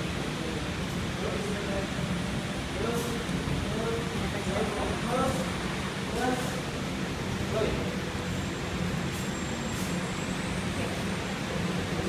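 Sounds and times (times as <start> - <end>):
low background hum and rumble: 0.0 - 12.0.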